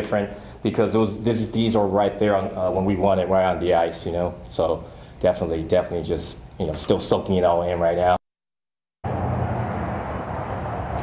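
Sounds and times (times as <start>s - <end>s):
low traffic rumble: 9.0s - 11.0s.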